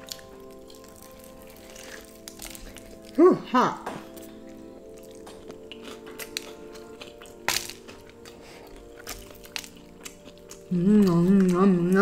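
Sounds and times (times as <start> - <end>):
crunchy chewing: 0.0 - 3.2, 3.9 - 12.0
background music: 0.0 - 12.0.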